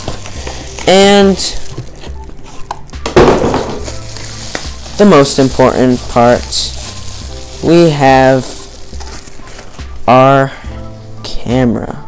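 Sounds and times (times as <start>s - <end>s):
bubble wrap crinkling: 0.0s - 10.2s.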